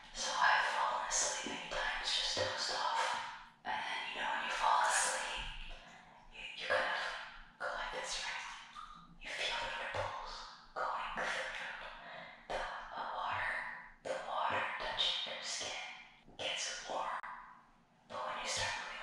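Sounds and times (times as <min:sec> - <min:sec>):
woman whispering: 0:00.0 - 0:08.6, 0:09.2 - 0:17.3, 0:18.1 - 0:19.0.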